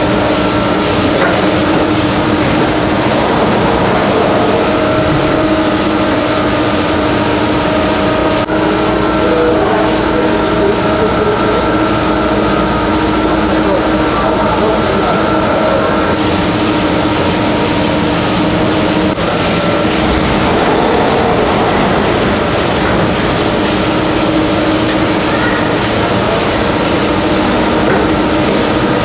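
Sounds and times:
humming tone: 0.0s - 9.6s, 19.2s - 25.4s
gondola station machinery running: 0.0s - 29.0s.

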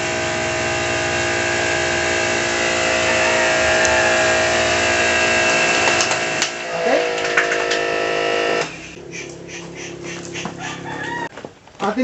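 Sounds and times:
water spray hissing: 0.0s - 10.9s
sprayer pump running: 0.0s - 11.0s.

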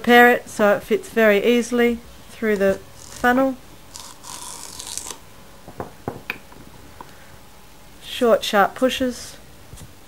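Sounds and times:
celery scraping and crunching: 2.2s - 5.2s.

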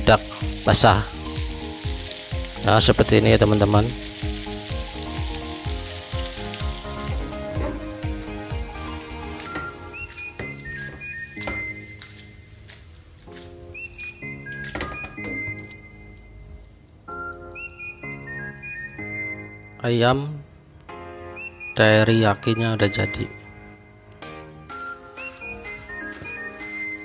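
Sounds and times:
chicken sizzling in a pan: 0.0s - 12.4s
background music: 0.0s - 27.0s.

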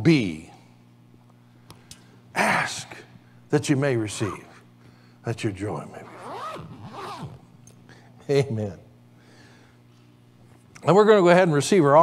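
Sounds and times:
zipper being pulled shut: 6.0s - 7.4s.

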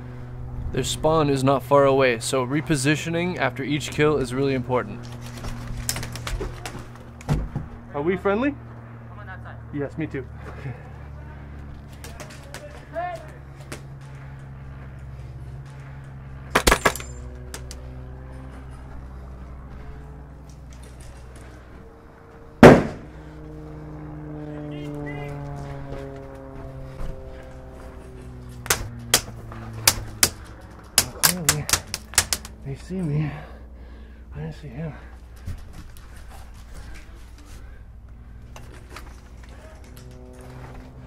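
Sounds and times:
airsoft gun shots: 22.6s - 23.1s.

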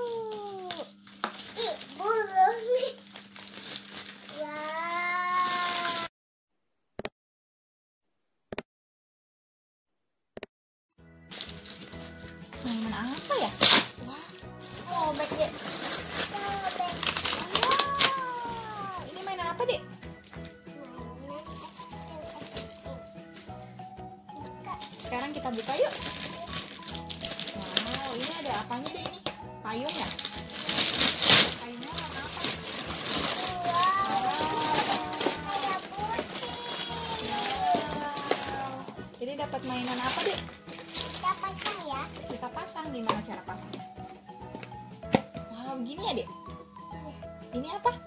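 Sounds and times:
plastic wrapping crackling: 0.0s - 6.1s, 11.3s - 19.7s, 20.3s - 23.9s, 24.5s - 45.2s
toddler wailing: 4.4s - 6.1s, 16.4s - 19.1s, 33.3s - 39.0s
background music: 11.0s - 48.0s.

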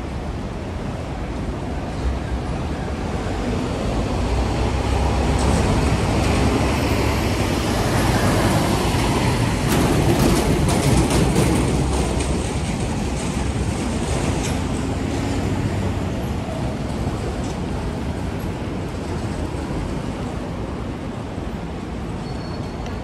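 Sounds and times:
city street traffic: 0.0s - 23.0s.

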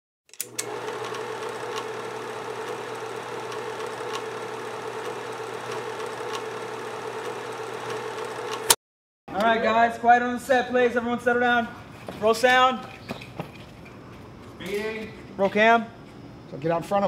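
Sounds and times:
projector clicks: 0.3s - 8.8s
film projector whirring: 0.4s - 8.8s
projector ticking: 0.7s - 8.7s.

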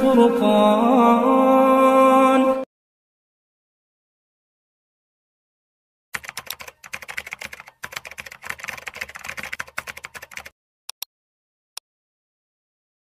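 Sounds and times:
computer keyboard typing: 6.2s - 11.0s.

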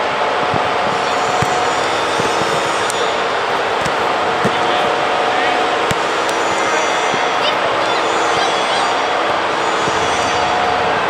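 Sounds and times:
echoing hall noise: 0.0s - 11.0s
voices calling out: 0.0s - 11.0s
ball kick thuds: 0.3s - 7.8s.

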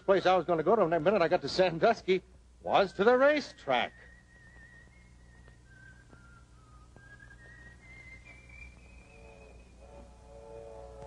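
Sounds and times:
person whistling a slow tune: 2.7s - 10.0s.

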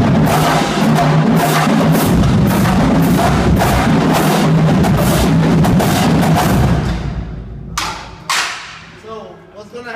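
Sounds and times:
drumline stroke ringing: 0.0s - 8.8s
sharp percussive accents: 0.0s - 9.0s.

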